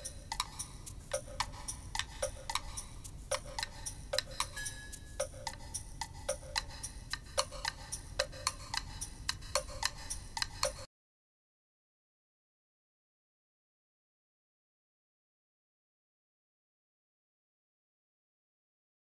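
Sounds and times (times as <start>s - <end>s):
high held tone: 0.0s - 6.6s
clock-like ticking music: 0.0s - 10.9s
wood-block knock: 0.0s - 10.9s.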